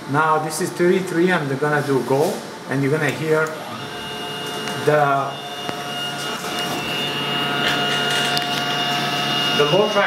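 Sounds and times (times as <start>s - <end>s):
motor drive whine: 0.0s - 10.0s.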